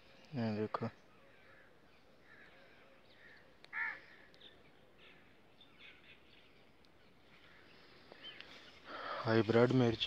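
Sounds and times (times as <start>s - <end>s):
small birds chirping: 0.0s - 10.0s
crow cawing: 1.2s - 5.3s.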